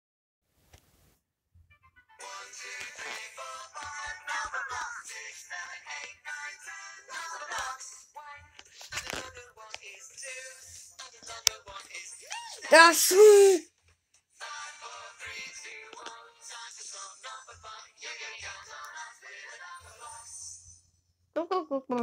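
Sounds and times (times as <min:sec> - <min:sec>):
cartoon music with singing: 0:02.2 - 0:13.6, 0:14.4 - 0:20.8.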